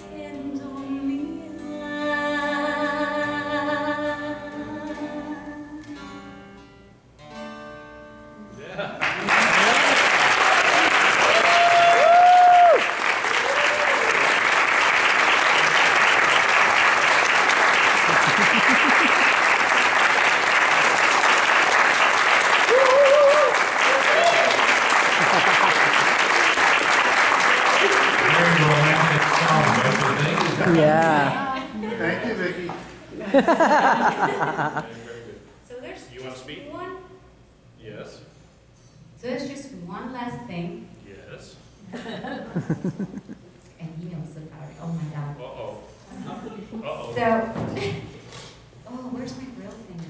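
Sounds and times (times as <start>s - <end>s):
woman singing: 0.0s - 6.2s
acoustic guitar: 0.0s - 9.3s
audience applause: 9.0s - 31.4s, 33.4s - 34.9s
audience cheering: 9.1s - 31.3s.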